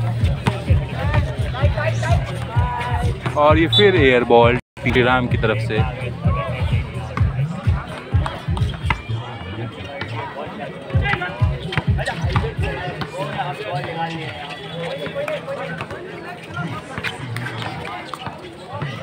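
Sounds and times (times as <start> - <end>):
music from loudspeaker: 0.0 - 9.5
voices and chatter: 0.0 - 19.0.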